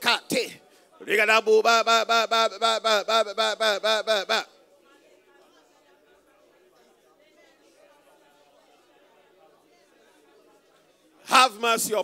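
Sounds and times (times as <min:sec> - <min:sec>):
faint murmur of speech: 0:00.0 - 0:12.0.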